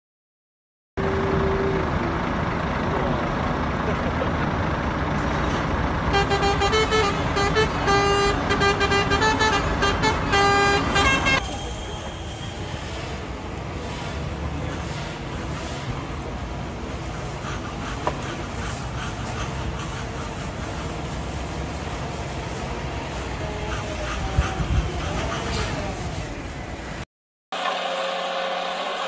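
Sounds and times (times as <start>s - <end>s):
truck engine rumbling: 1.0s - 27.0s
street traffic noise: 1.0s - 27.1s
short horn honks: 6.1s - 13.0s.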